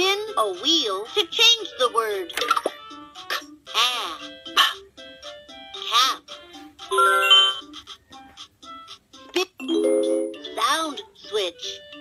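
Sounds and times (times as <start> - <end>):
toy voice: 3.3 - 4.8, 5.8 - 6.3.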